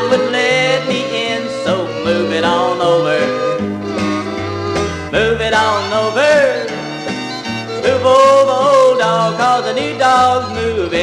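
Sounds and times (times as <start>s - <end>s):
person singing: 0.0s - 3.6s, 5.1s - 6.9s, 7.7s - 11.0s
country band music: 0.0s - 11.0s.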